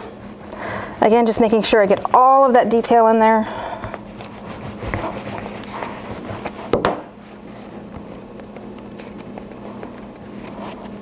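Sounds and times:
plastic roller rolling over paste: 1.0s - 11.0s
fingertips rubbing paste: 3.9s - 6.8s.

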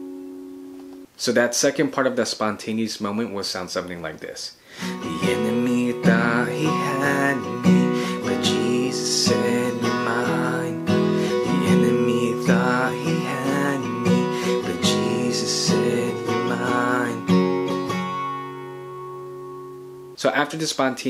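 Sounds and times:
acoustic guitar strumming: 0.0s - 1.1s, 4.8s - 20.2s.

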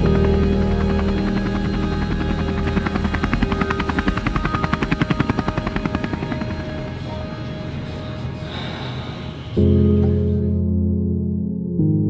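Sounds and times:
helicopter rotor chopping: 0.0s - 9.6s
turbine tone: 0.0s - 10.7s
background music: 0.0s - 12.0s.

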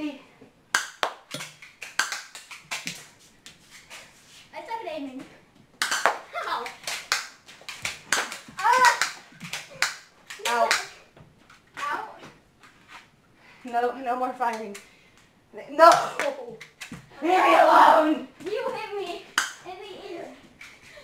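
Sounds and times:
boys shouting and yelping: 6.3s - 6.8s, 8.4s - 11.1s, 15.7s - 20.4s.

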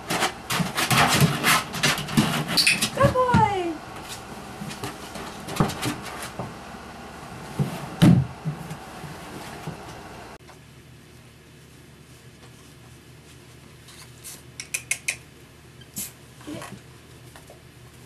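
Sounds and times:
short falling whine: 3.7s - 10.4s
thuds: 7.5s - 9.9s
plastic chair clattering knocks: 7.6s - 8.8s.

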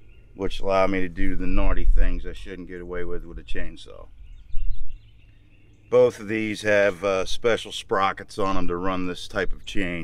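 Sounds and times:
low rumble: 0.0s - 5.0s
faint bird chirps: 0.0s - 8.5s
man speaking: 0.4s - 4.1s, 5.9s - 10.0s.

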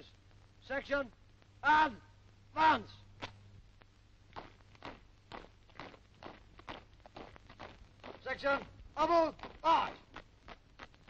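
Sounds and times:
boots marching in step: 3.2s - 11.0s.

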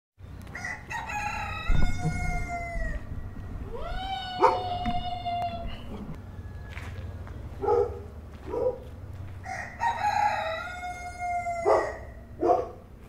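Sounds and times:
rooster crowing: 0.5s - 4.9s, 6.1s - 7.4s, 9.4s - 12.3s.

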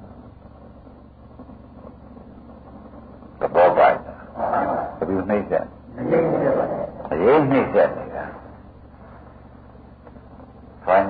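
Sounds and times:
recording hiss and hum: 0.0s - 11.0s
man talking: 3.4s - 8.5s.

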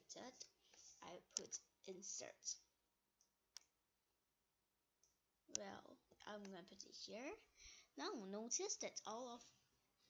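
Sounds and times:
computer mouse click: 1.3s - 1.6s.

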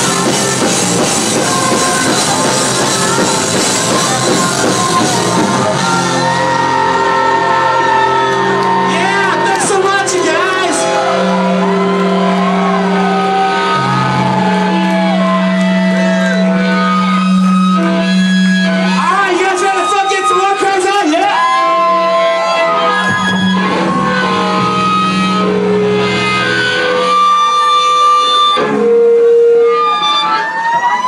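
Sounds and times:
distorted electric guitar: 0.0s - 31.0s
drums: 0.0s - 31.0s.

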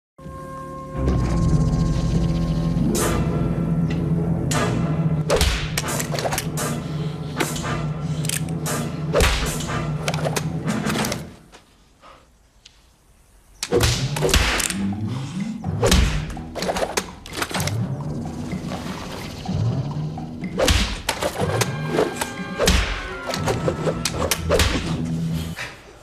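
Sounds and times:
film music low note: 0.2s - 5.3s.

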